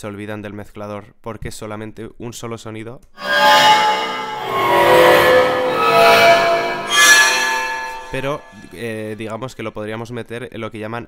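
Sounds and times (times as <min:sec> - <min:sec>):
bowed piano tones: 0:03.2 - 0:08.9.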